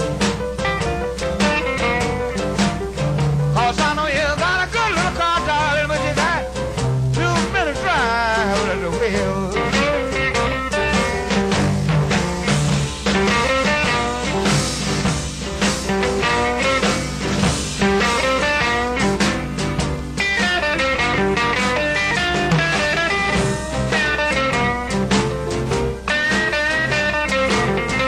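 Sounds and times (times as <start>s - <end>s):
blues band instrumental: 0.0s - 28.0s
electric guitar lines: 9.5s - 28.0s.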